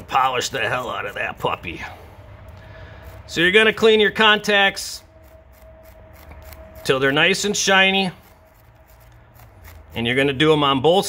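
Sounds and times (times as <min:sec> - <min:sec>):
abrasive stick scrubbing metal: 0:02.8 - 0:11.0.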